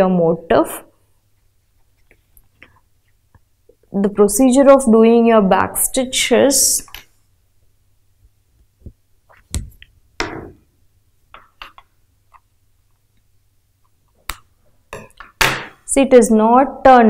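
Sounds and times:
wooden hoop knock: 9.6s - 10.6s.

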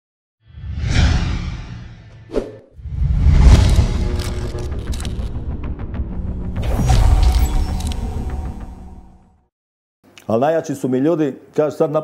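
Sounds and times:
whoosh with deep rumble: 0.5s - 8.0s.

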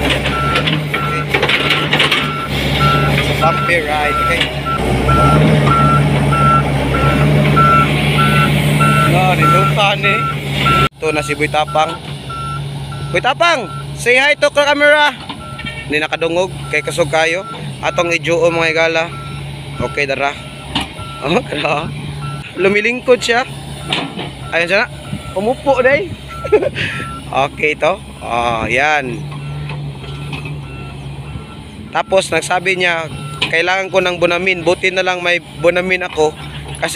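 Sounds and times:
diesel engine droning: 0.0s - 36.9s
high warning alarm beeps: 0.3s - 14.8s, 15.4s - 18.1s, 18.8s - 21.6s, 22.2s - 22.5s, 23.8s - 27.3s, 29.4s - 32.4s, 33.0s - 34.3s.

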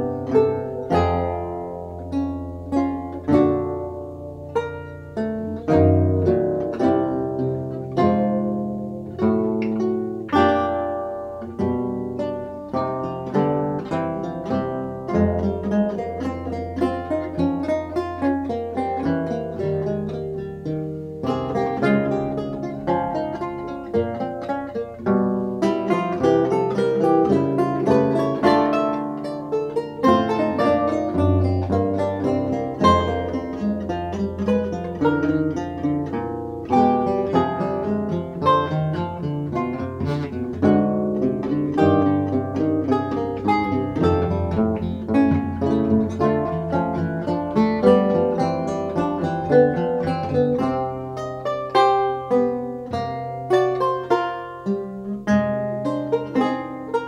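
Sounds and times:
lutes playing a fugue: 0.0s - 57.0s.

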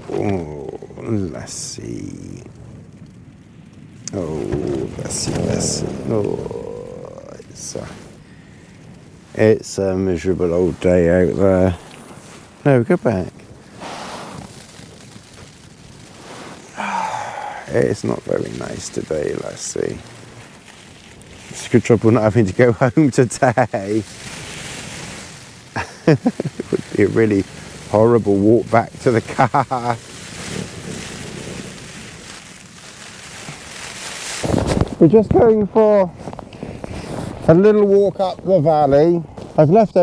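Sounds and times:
rain on a tarp: 0.0s - 40.0s
wind gusts buffeting microphone: 0.0s - 40.0s.

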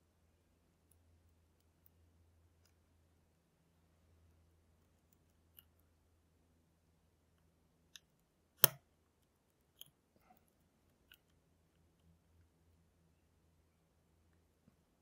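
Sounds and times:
lock pick clicking: 8.0s - 8.8s.

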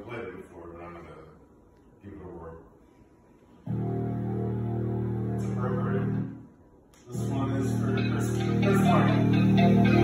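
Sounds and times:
song on tv speakers: 3.7s - 6.3s, 6.9s - 10.0s
sustained chord: 3.7s - 6.4s, 7.1s - 10.0s.

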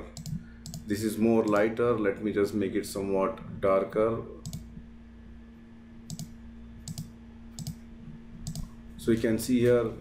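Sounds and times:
faint steady hum: 0.0s - 10.0s
computer mouse clicks: 0.1s - 1.7s, 4.4s - 4.7s, 6.1s - 7.8s, 8.4s - 8.7s.

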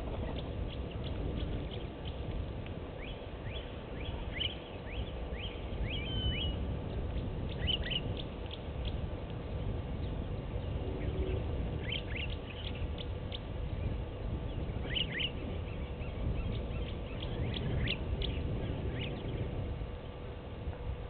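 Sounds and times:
birds chirping: 0.0s - 20.3s
low background rumble: 0.0s - 21.0s.

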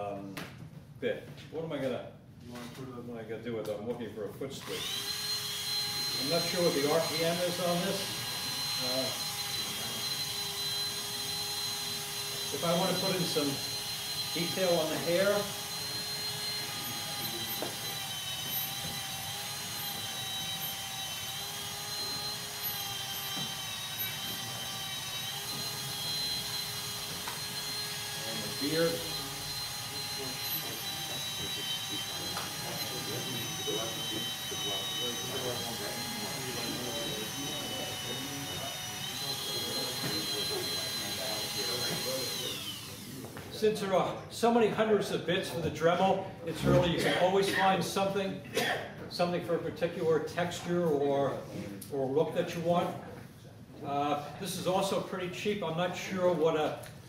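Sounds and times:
rotary carving tool whining: 4.6s - 44.0s.

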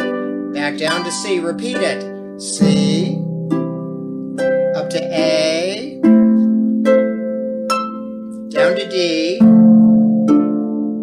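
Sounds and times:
lever harp chords: 0.0s - 11.0s
person calling out: 0.6s - 3.2s, 4.8s - 6.0s, 8.5s - 9.5s.

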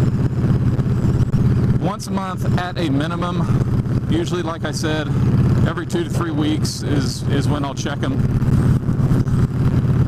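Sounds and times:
motorcycle engine cruising: 0.0s - 10.0s.

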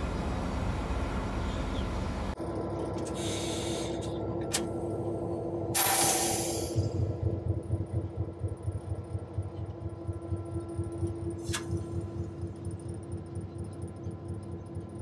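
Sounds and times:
diesel locomotive engine throbbing: 0.0s - 15.0s
air brake hiss: 3.1s - 4.2s, 5.8s - 6.9s.

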